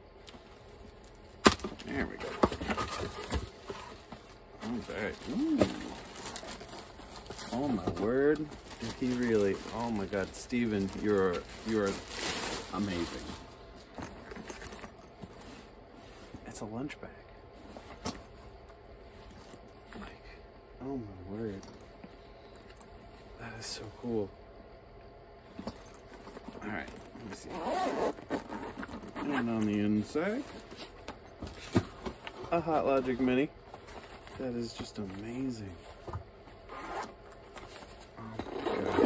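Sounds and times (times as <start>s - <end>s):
fabric rustling: 3.1s - 13.6s.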